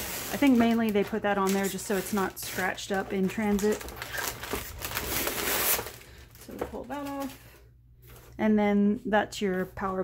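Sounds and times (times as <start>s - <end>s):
plastic film rustling and crackling: 0.0s - 8.3s.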